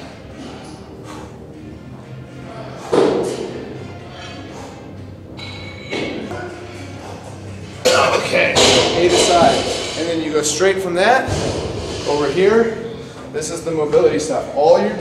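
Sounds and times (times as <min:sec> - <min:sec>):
music with voices: 0:00.0 - 0:15.0.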